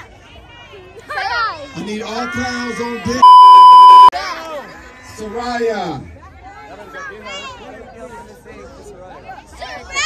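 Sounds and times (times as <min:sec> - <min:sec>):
high-pitched censor bleep: 0:03.2 - 0:04.1.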